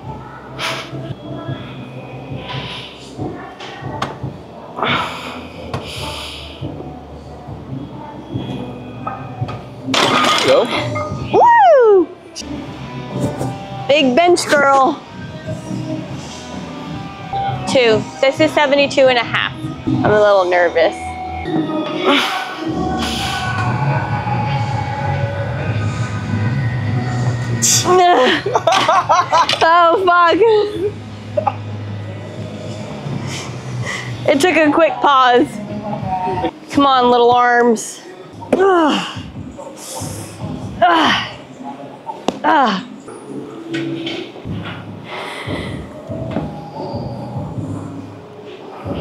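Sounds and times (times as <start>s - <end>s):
background music: 0.0s - 49.0s.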